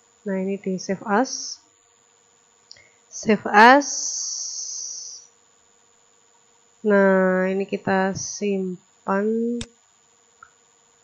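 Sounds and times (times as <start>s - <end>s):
high hiss: 3.2s - 5.3s.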